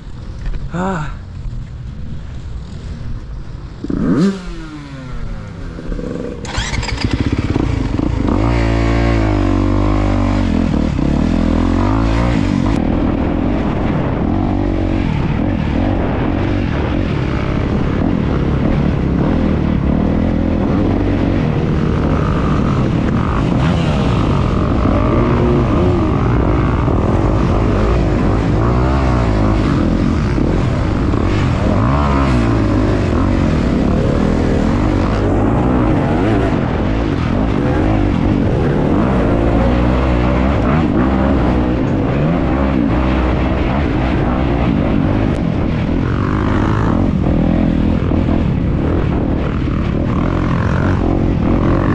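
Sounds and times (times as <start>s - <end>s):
dirt bike engine revving: 3.8s - 51.9s.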